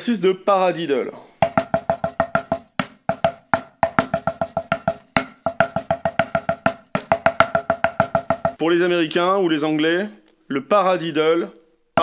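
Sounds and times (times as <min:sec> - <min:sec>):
drumsticks on a practice pad: 0:01.4 - 0:08.6.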